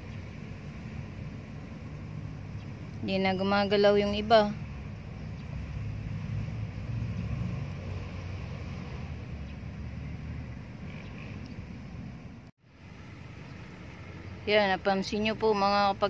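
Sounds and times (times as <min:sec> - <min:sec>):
low uneven outdoor rumble: 0:00.0 - 0:16.0.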